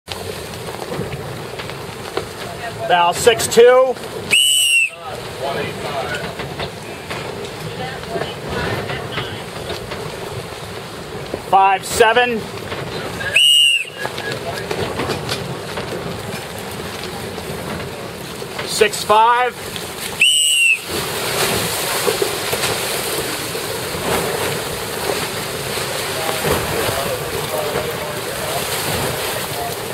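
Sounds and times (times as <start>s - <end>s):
water slapping against hull: 0.1s - 29.9s
short whistle blast: 4.3s - 5.0s, 13.3s - 14.0s, 20.2s - 21.0s.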